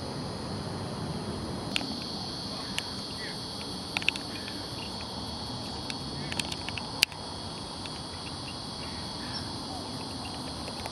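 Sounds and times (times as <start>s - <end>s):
high-pitched insect chorus: 0.0s - 10.9s.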